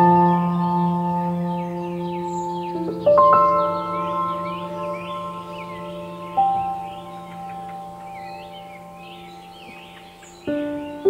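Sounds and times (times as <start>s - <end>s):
birds chirping: 0.0s - 11.0s
calm ambient music: 0.0s - 11.0s.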